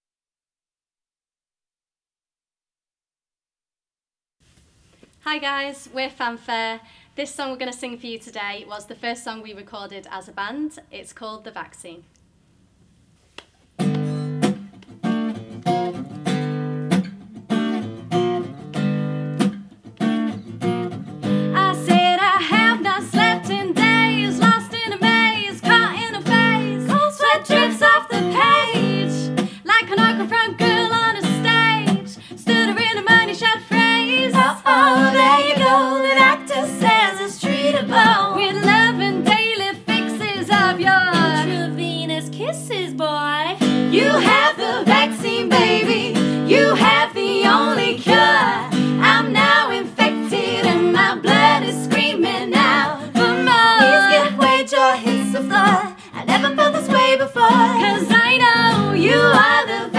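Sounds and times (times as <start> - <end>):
acoustic guitar strumming chords: 13.8 - 41.9, 43.6 - 59.9
women singing: 21.6 - 59.9.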